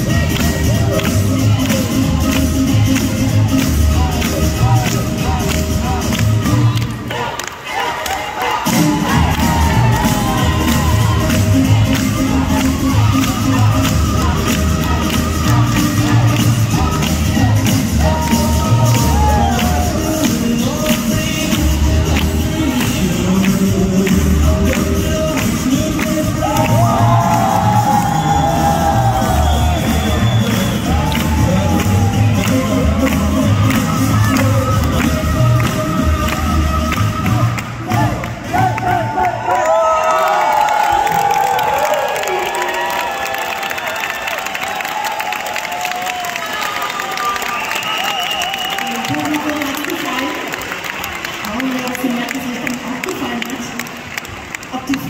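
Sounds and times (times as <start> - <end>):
boogie woogie dance music: 0.0 - 7.2, 8.4 - 39.4
crowd cheering and whooping: 6.5 - 20.3, 26.2 - 51.6.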